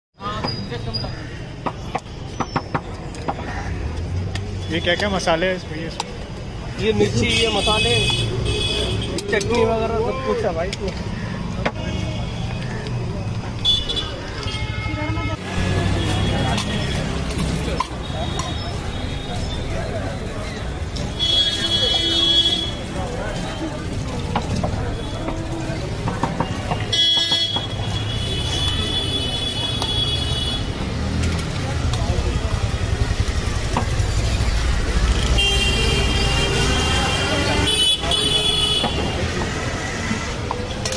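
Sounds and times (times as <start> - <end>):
traffic rumble: 0.2 - 40.9
people talking: 4.7 - 40.9
vehicle horn: 13.6 - 17.0, 21.1 - 22.9, 35.2 - 39.2
vehicle horn steady high tone: 35.3 - 38.9.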